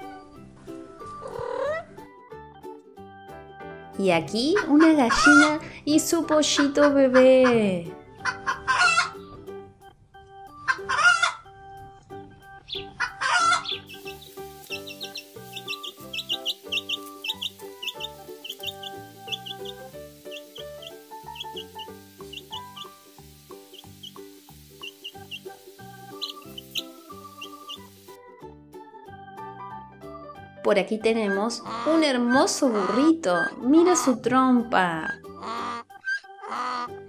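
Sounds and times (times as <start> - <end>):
light background music: 0.0 - 37.0
hen clucking: 8.2 - 9.2, 10.7 - 11.4, 12.7 - 28.0, 32.6 - 33.6
chick peeping: 12.6 - 28.1.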